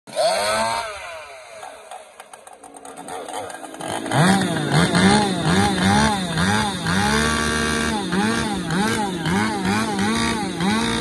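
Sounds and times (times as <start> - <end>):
chainsaw revving: 0.1 - 11.0.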